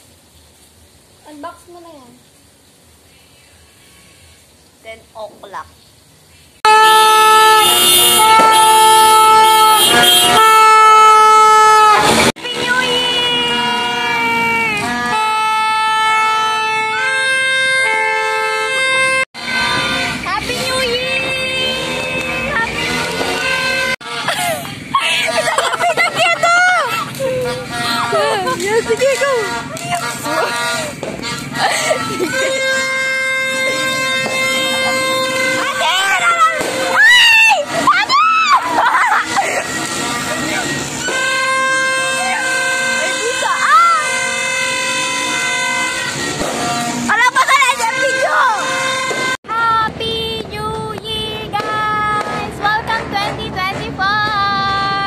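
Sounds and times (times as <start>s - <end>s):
vehicle horns honking: 6.6s - 49.8s, 51.1s - 53.1s
voices: 12.3s - 16.6s, 19.4s - 55.0s.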